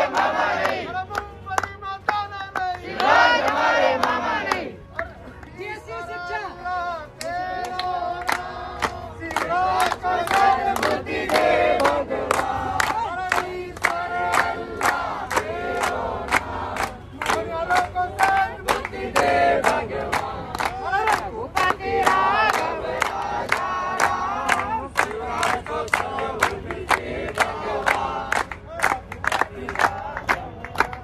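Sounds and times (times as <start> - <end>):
crowd shouting together: 0.0 - 1.0, 2.8 - 4.8, 7.2 - 28.8
group chanting: 0.0 - 1.0, 2.8 - 4.8, 7.2 - 28.6
rhythmic clapping: 0.0 - 5.8, 7.0 - 31.0.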